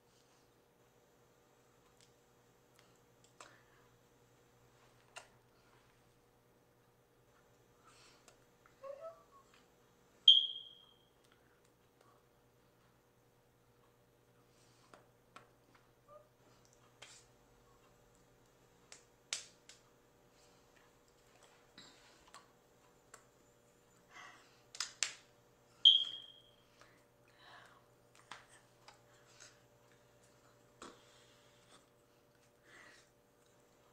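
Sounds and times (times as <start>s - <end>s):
faint steady hum: 0.0s - 33.9s
high-pitched beep: 10.3s - 11.0s, 25.9s - 26.5s.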